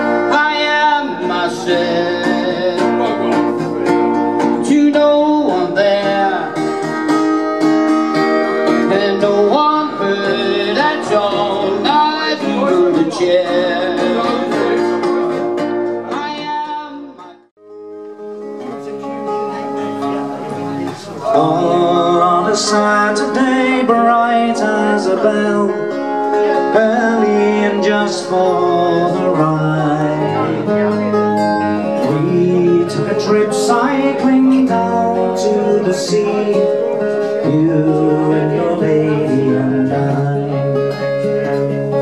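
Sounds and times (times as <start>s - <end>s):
man singing: 0.0s - 17.5s, 20.8s - 42.0s
acoustic guitar strumming: 0.0s - 42.0s.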